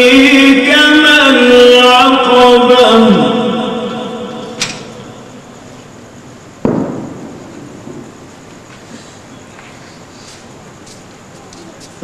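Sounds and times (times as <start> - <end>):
echo of recitation: 0.0 - 5.6.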